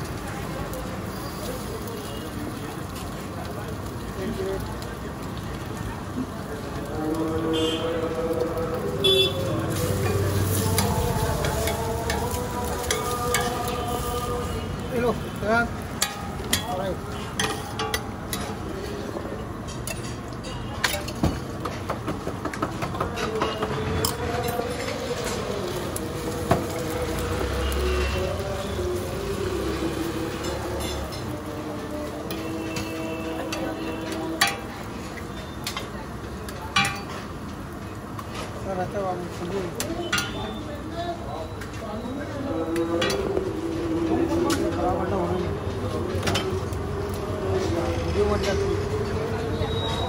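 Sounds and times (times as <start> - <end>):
busy street noise: 0.0 - 50.0
food sizzling on a griddle: 0.0 - 50.0
metal spatula clinking and scraping: 9.7 - 14.2, 16.0 - 18.6.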